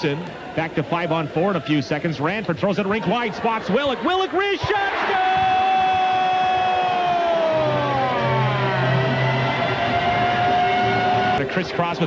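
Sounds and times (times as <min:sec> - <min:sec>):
crowd cheering: 0:02.8 - 0:12.0
arena goal horn: 0:07.7 - 0:11.5.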